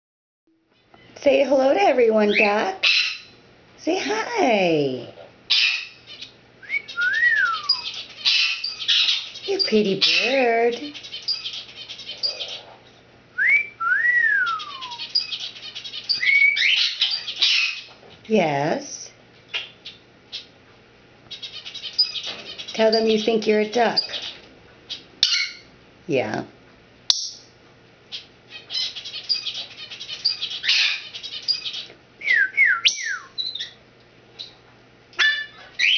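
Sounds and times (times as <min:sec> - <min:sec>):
parrot whistling: 0:05.5 - 0:10.4, 0:11.2 - 0:12.7, 0:13.4 - 0:17.9, 0:30.2 - 0:31.6, 0:32.2 - 0:33.8, 0:35.2 - 0:35.9
faint bird chirp: 0:05.5 - 0:13.0, 0:14.4 - 0:17.9, 0:21.3 - 0:25.7, 0:28.1 - 0:31.9.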